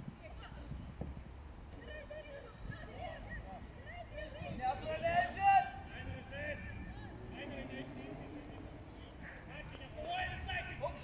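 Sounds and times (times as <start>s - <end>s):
wind rumble on microphone: 0.0s - 1.8s, 4.2s - 11.0s.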